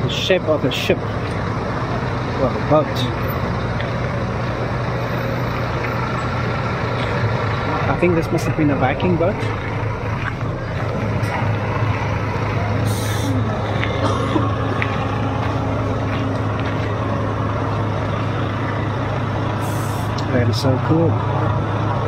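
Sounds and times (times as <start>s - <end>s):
bus diesel engine idling: 0.0s - 22.0s
air brakes hissing: 12.8s - 13.5s, 19.6s - 20.2s.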